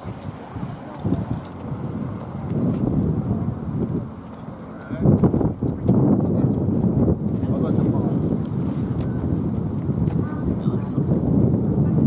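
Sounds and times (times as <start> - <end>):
road traffic: 0.0 - 9.4
passing bicycles: 0.0 - 12.0
voices of passers-by: 0.0 - 12.0
wind on microphone: 0.0 - 12.0.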